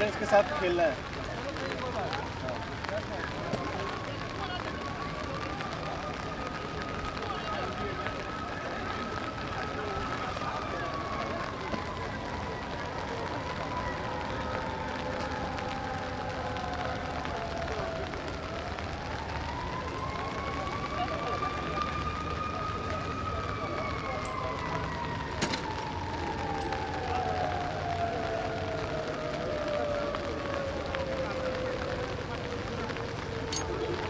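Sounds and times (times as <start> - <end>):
murmur of voices: 0.0 - 34.0
siren wailing: 1.7 - 34.0.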